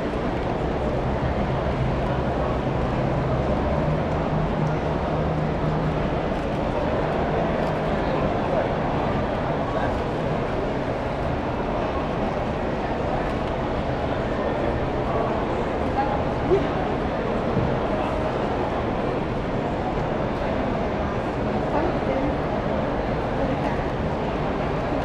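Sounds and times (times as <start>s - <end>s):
indistinct crowd voices: 0.0s - 25.0s.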